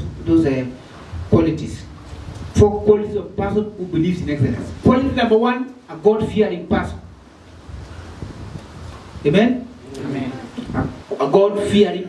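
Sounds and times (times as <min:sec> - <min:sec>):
wind rumble on microphone: 0:00.0 - 0:05.2, 0:06.2 - 0:11.1
faint hiss: 0:00.0 - 0:12.0.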